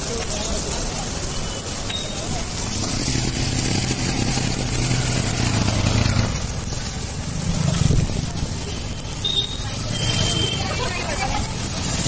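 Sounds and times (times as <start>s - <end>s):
rain: 0.0s - 12.0s
tyres hissing on wet road: 0.0s - 12.0s
motorcycle engine: 2.4s - 12.0s.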